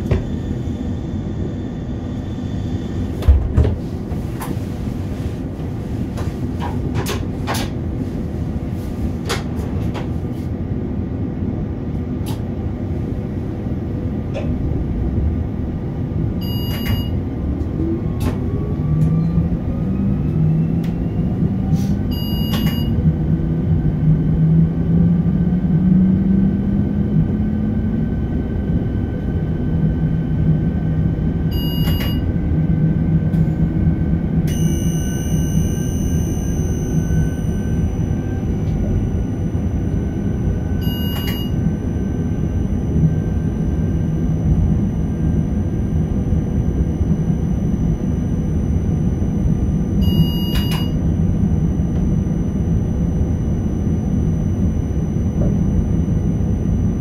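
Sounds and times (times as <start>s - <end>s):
train running noise: 0.0s - 57.0s
short electronic cab beep: 16.4s - 17.2s, 22.1s - 23.0s, 31.5s - 32.3s, 34.5s - 44.3s, 47.5s - 56.9s
traction drive hum rising: 23.1s - 57.0s
thin high whine: 34.5s - 57.0s.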